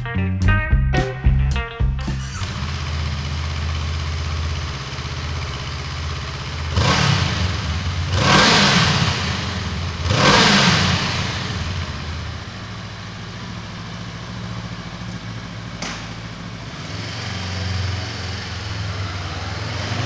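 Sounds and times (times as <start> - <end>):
motorcycle engine idling and revving: 2.1 - 20.0.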